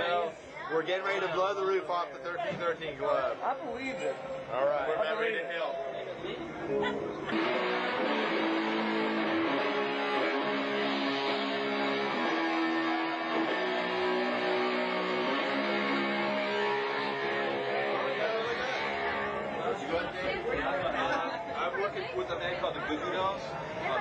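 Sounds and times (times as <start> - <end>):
electric guitar chords: 6.7 - 22.1.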